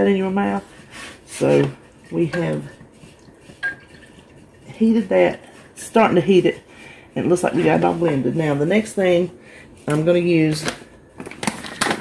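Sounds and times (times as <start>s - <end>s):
whisk stirring in saucepan: 0.0s - 10.4s
whisk clinking against pan: 1.9s - 6.5s.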